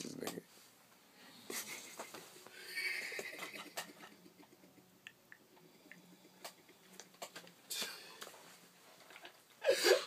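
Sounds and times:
stifled hissing laugh: 1.5s - 5.0s.

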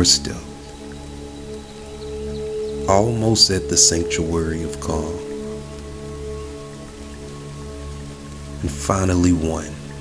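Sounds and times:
rain: 0.0s - 10.0s
soft ambient music: 0.0s - 10.0s.

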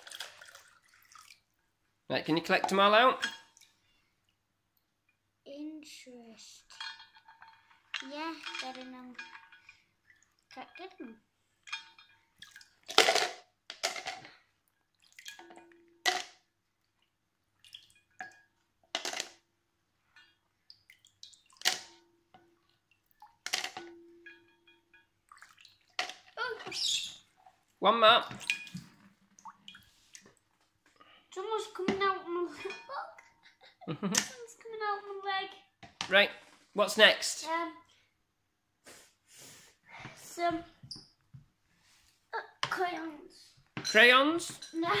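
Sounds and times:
water splashing: 0.0s - 1.6s, 11.6s - 13.1s, 14.9s - 15.9s, 16.8s - 18.5s, 20.6s - 30.4s
plastic pegs clattering into tub: 12.9s - 14.4s, 16.0s - 16.4s, 18.9s - 19.4s, 21.6s - 22.0s, 23.4s - 24.0s.

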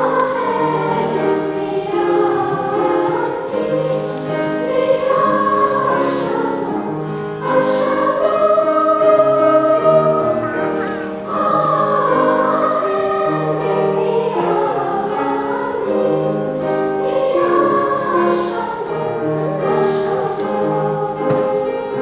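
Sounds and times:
children's choir singing: 0.0s - 22.0s
grand piano accompaniment: 0.0s - 22.0s.

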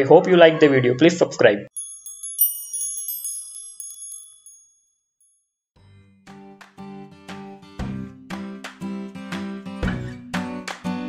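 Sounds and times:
tinkling bell-like chime: 1.7s - 5.5s.

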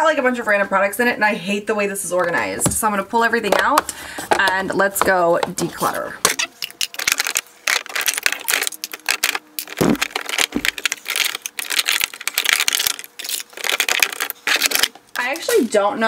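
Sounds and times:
plastic jars clattering: 6.3s - 15.6s.

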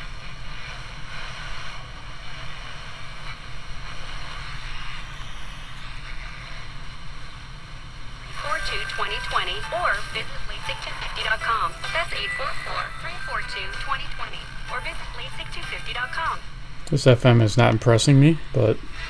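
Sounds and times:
music from radio: 0.0s - 7.0s, 8.2s - 16.4s
radio static hiss: 0.0s - 19.0s.

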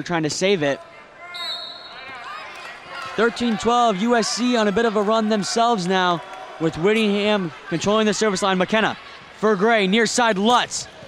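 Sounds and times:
referee whistle blast: 1.3s - 2.1s.

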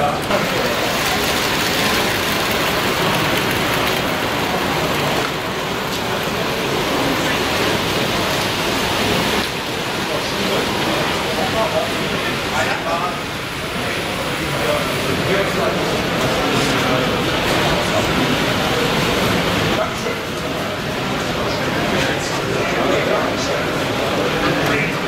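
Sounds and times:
babble of many people talking: 0.0s - 25.0s.

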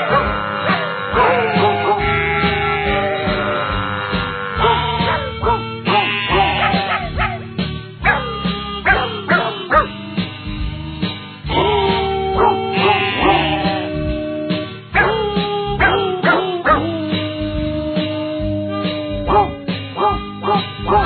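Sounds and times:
pitched dog barks singing melody: 0.0s - 2.6s, 4.6s - 7.4s, 8.0s - 10.0s, 11.5s - 14.0s, 14.9s - 17.2s, 18.8s - 21.0s
backing band: 0.0s - 21.0s.

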